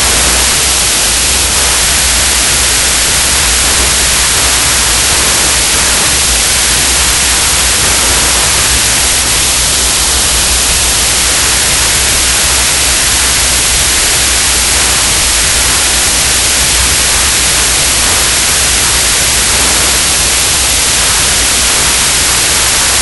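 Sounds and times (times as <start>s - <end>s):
low hum: 0.0s - 23.0s
torch flame hissing: 0.0s - 23.0s.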